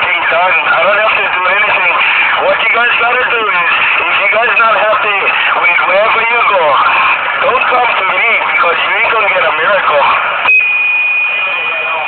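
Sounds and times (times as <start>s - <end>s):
person talking on phone: 0.0s - 10.2s
steady high beep tone: 10.4s - 12.0s.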